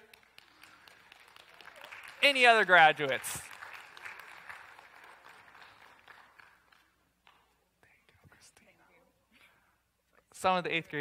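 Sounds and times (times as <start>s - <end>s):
faint scattered clapping: 0.0s - 7.7s.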